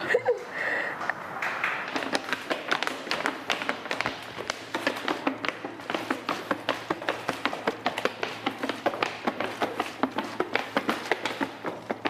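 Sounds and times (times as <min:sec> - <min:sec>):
shoes tapping on tiled floor: 0:01.4 - 0:12.0.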